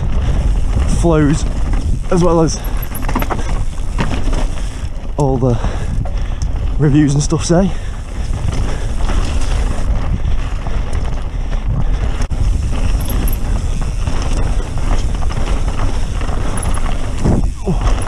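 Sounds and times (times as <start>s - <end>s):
bike clicking: 0.0s - 18.0s
tyre noise on dirt: 0.0s - 18.0s
wind rushing on microphone: 0.0s - 18.0s.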